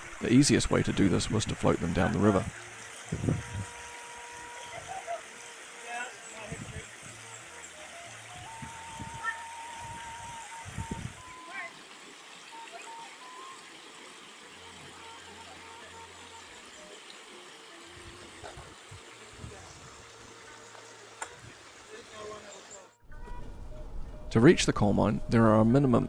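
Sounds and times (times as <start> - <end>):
river water rushing over rocks: 1.1 - 22.8.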